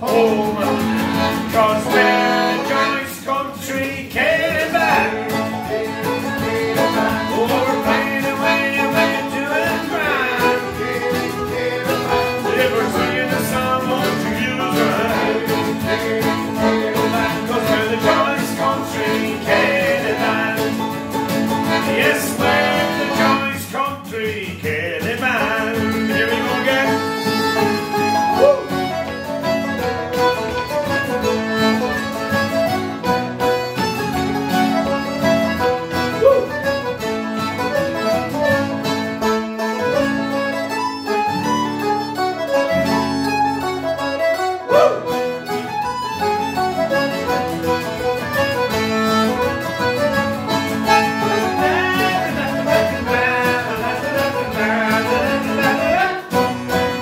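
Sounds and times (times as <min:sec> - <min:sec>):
accordion: 0:00.0 - 0:57.0
banjo: 0:00.0 - 0:57.0
mandolin: 0:00.0 - 0:57.0
strummed acoustic guitar: 0:00.0 - 0:57.0.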